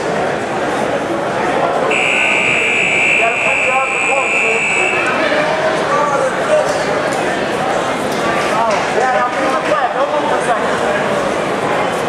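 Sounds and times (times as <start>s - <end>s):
crowd chatter: 0.0s - 12.0s
electronic buzzer high tone: 1.9s - 5.3s.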